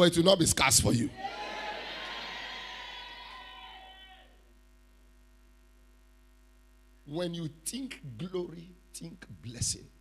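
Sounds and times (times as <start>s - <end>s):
congregation responding loudly: 1.1s - 4.3s.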